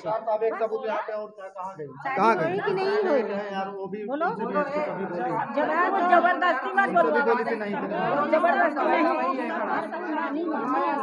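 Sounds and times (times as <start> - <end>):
people talking chatter: 0.0 - 11.0.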